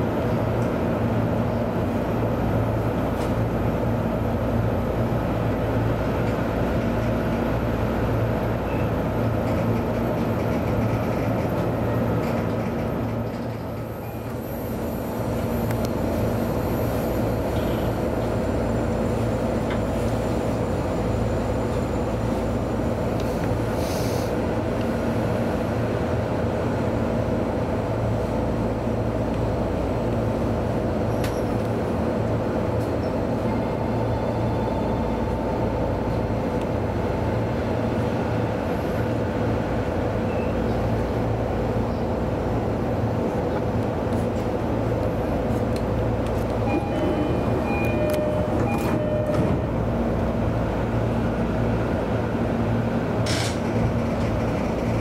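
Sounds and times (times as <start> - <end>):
steady train cab hum: 0.0 - 55.0.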